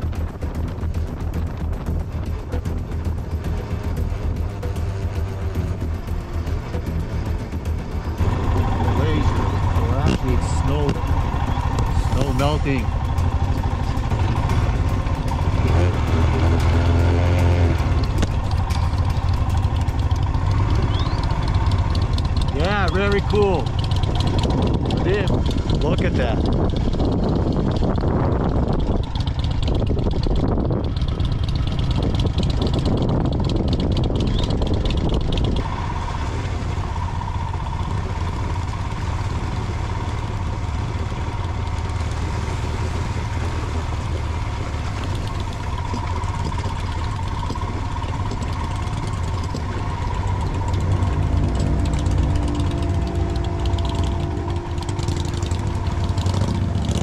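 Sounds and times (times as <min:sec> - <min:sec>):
wind noise on microphone: 0:00.0 - 0:39.8
motorcycle engine running: 0:00.0 - 0:57.0.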